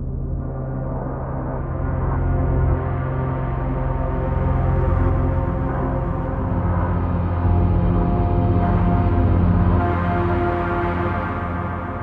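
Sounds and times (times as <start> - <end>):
sustained low synth drone: 0.0 - 12.0.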